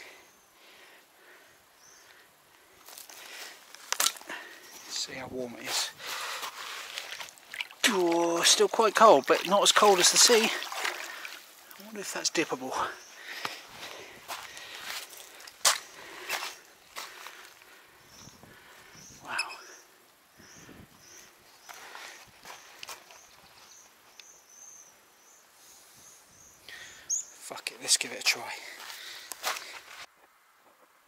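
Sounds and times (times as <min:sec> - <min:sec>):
footsteps crunching on shingle: 0:02.8 - 0:11.8, 0:13.2 - 0:17.7, 0:28.5 - 0:30.1.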